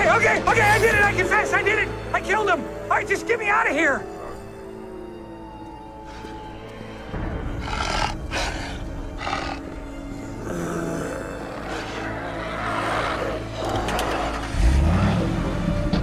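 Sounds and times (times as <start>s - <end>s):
dramatic music score: 0.0s - 16.0s
monster roaring: 7.5s - 15.0s
car engine rising: 13.2s - 16.0s.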